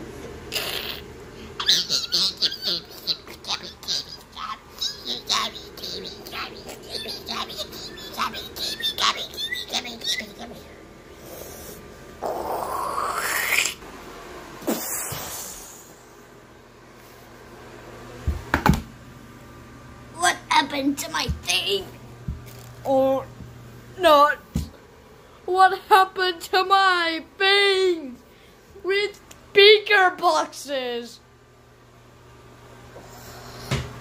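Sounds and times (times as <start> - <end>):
high-pitched squeaky squeals: 6.8 - 10.4.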